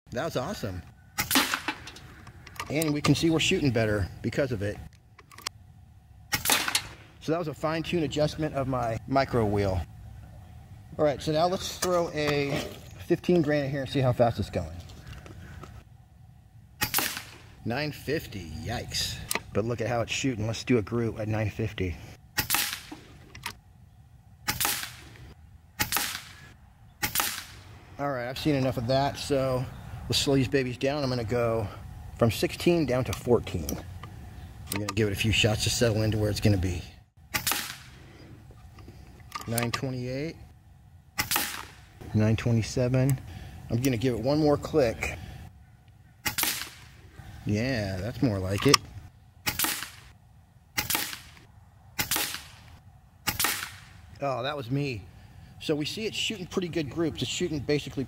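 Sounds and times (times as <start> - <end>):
air rifle shots: 1.2 - 2.1, 6.3 - 7.2, 16.8 - 17.5, 22.4 - 23.2, 24.4 - 25.2, 25.8 - 27.7, 37.3 - 38.2, 41.2 - 41.9, 46.2 - 47.0, 49.4 - 50.2, 50.8 - 54.1.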